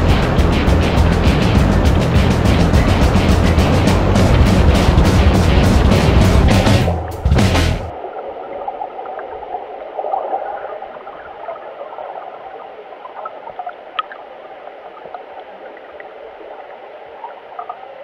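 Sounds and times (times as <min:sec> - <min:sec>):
muffled underwater whitewater rushing: 0:00.0 - 0:18.0
small ticks and pops: 0:13.0 - 0:14.3, 0:17.2 - 0:17.8.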